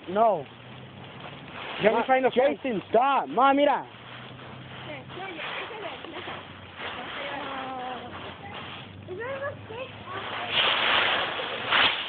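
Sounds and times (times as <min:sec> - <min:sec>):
distant muffled voices: 0:00.0 - 0:11.8
rustling leaves: 0:00.0 - 0:12.0.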